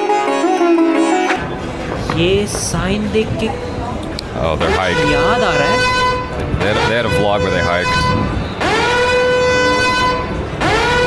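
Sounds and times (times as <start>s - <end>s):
siren winding up: 7.7s - 11.0s.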